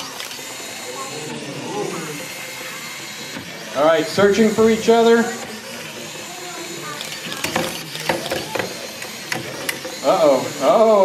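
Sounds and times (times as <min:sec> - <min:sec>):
small geared motors running: 0:00.0 - 0:11.0
robots clicking and knocking: 0:06.9 - 0:10.0.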